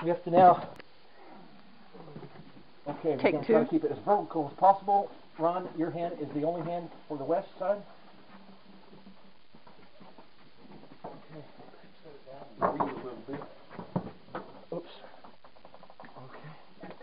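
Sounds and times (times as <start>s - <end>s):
muffled men's voices: 2.0s - 8.0s, 11.2s - 13.6s.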